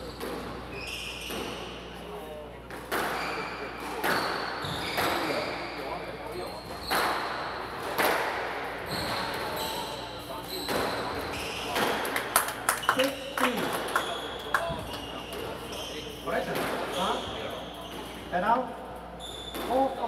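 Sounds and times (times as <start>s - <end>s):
squash ball cracking off rackets: 6.9s - 8.6s
shoes squeaking on wooden floor: 8.8s - 11.9s, 13.9s - 18.3s.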